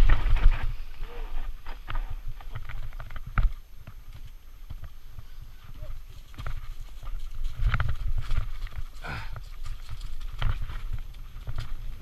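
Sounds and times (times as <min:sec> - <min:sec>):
bike tyres rolling rumble: 0:00.0 - 0:12.0.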